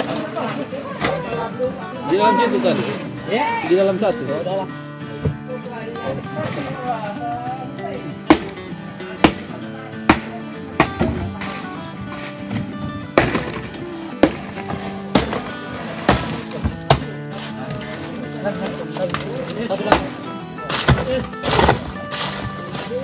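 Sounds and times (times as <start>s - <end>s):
music playing: 0.0s - 23.0s
hammer breaking block ice: 8.3s - 8.6s, 10.1s - 11.6s, 13.2s - 18.0s, 18.6s - 23.0s.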